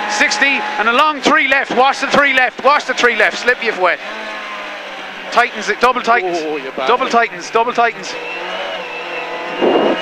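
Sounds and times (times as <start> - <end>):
car engine running hard: 0.0 - 10.0
steady high whine: 6.8 - 10.0
short rush of noise: 9.5 - 10.0.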